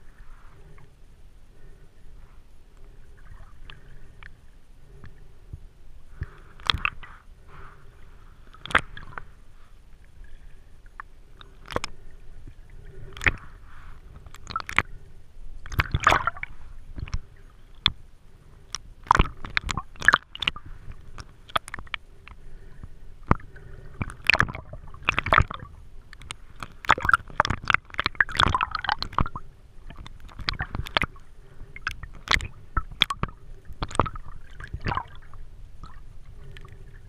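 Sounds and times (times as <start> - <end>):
sharp clicks and crackles: 6.2 - 7.1, 11.0 - 12.0, 13.1 - 13.5, 14.1 - 14.9, 15.6 - 16.4, 17.0 - 18.0, 18.7 - 22.4, 23.2 - 31.2, 31.8 - 35.1
water gurgling underwater: 11.0 - 15.0, 15.6 - 18.0, 19.0 - 22.0, 23.3 - 37.0
swimming movement bursts: 11.3 - 17.5.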